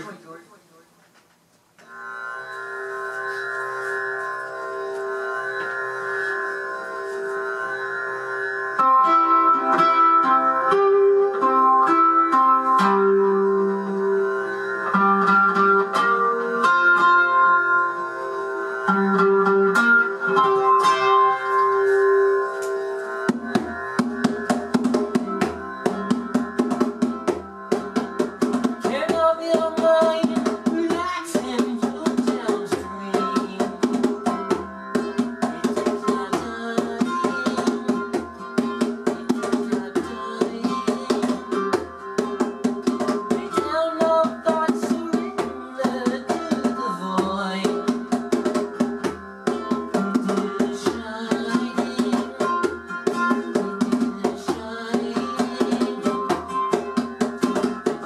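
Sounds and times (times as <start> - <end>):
hand drum strokes: 1.8 - 8.5, 18.9 - 58.0
ukulele drone melody: 1.8 - 58.0.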